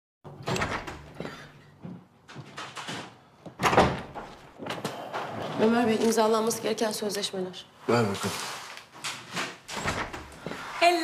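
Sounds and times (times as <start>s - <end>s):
door opening: 0.3s - 1.5s, 2.2s - 6.3s, 9.0s - 10.5s.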